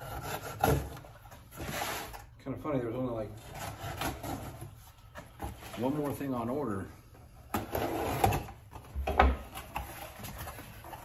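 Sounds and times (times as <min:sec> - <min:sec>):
packaging rustling and scraping: 0:00.0 - 0:02.4, 0:03.2 - 0:06.6, 0:07.5 - 0:11.0.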